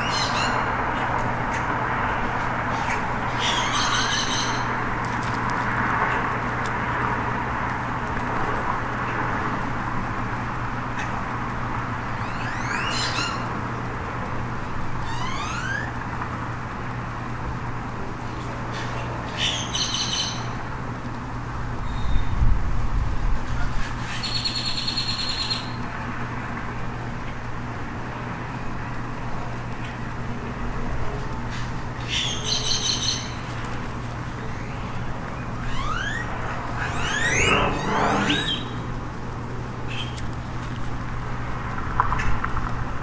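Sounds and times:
bird trilling: 0.0s - 0.7s, 2.7s - 4.8s, 12.2s - 13.5s, 15.0s - 16.0s, 32.0s - 33.5s, 34.5s - 38.9s
low even hum: 32.1s - 43.0s
high squeal: 34.5s - 38.9s.

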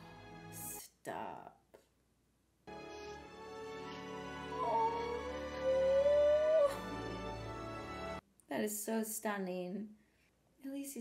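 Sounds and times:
held note rising in pitch: 3.9s - 7.3s.

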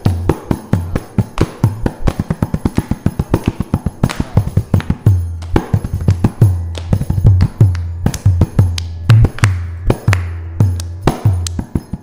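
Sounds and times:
hand drum fast strokes: 0.0s - 12.0s.

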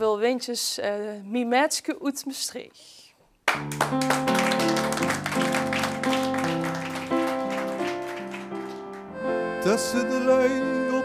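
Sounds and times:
hands clapping: 3.4s - 9.4s
accordion playing: 3.7s - 11.0s.

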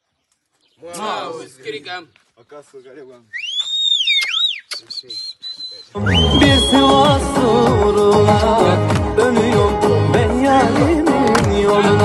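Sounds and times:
person whistling: 3.4s - 7.2s.

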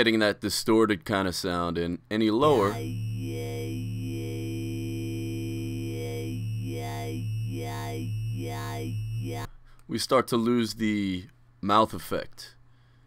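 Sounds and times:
synthesized wobble bass: 2.4s - 9.5s.

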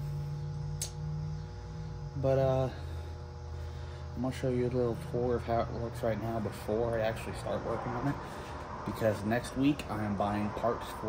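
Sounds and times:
faint sustained tones: 0.0s - 11.0s
steady low hum: 0.0s - 11.0s.

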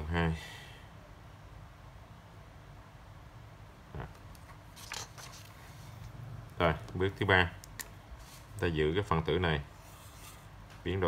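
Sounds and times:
faint paper rustle: 4.4s - 6.1s, 8.1s - 8.7s, 9.7s - 11.0s.

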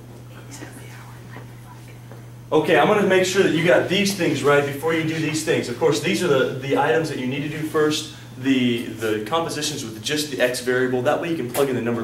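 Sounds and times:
steady low room hum: 0.0s - 12.0s.

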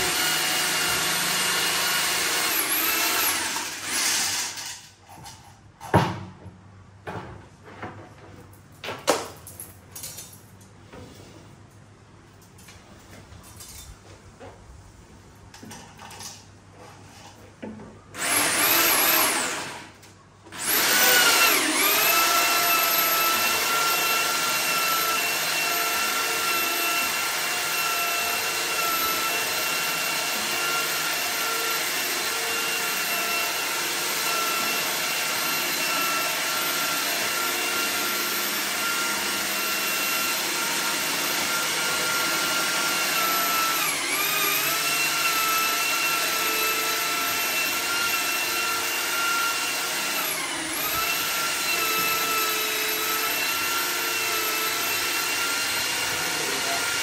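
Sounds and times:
cordless drill motor whine: 18.2s - 19.8s, 20.6s - 57.0s.

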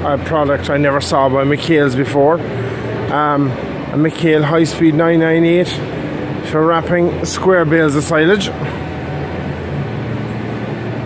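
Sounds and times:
exhibition hall din: 0.0s - 11.0s.

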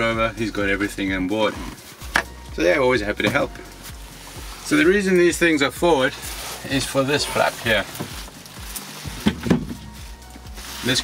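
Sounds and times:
board handling: 9.2s - 9.9s.

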